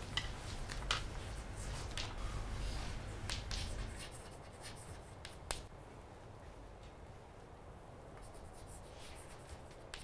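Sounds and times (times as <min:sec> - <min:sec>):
chalk scratching on chalkboard: 0:01.2 - 0:05.7, 0:08.2 - 0:10.0
chalk tapping on chalkboard: 0:03.2 - 0:05.7, 0:08.2 - 0:10.0.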